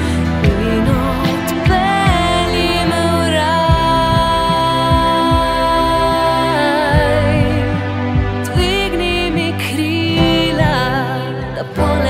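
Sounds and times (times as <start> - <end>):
sustained backing chords: 0.0 - 12.0
woman singing with vibrato: 0.0 - 12.0
steady beat: 0.4 - 6.1, 6.9 - 11.0.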